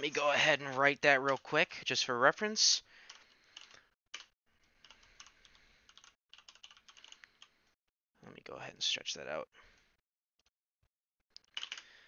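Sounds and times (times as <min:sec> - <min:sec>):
keyboard typing: 0:00.6 - 0:01.6, 0:03.1 - 0:07.5, 0:11.4 - 0:12.0.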